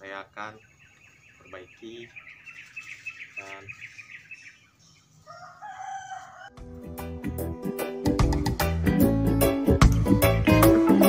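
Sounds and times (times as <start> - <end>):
small birds chirping: 0.0 - 6.5
rooster crowing: 5.2 - 6.6
background music with a beat: 6.5 - 11.0.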